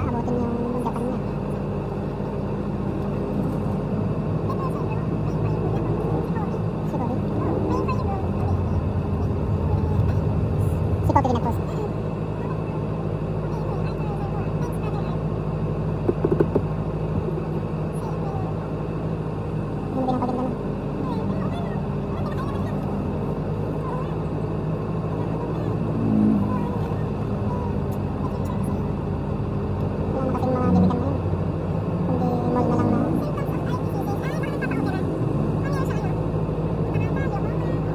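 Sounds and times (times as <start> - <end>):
car and motorcycle engines droning: 0.0 - 37.9.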